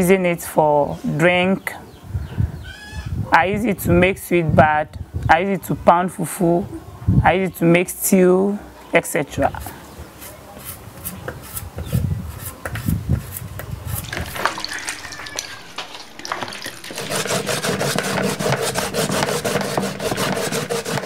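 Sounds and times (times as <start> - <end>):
scrubbing in water: 13.9 - 21.0
steady hum: 15.6 - 21.0.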